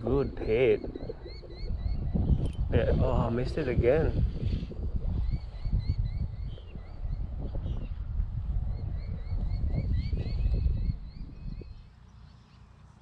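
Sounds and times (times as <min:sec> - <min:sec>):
wind buffeting microphone: 0:00.0 - 0:12.2.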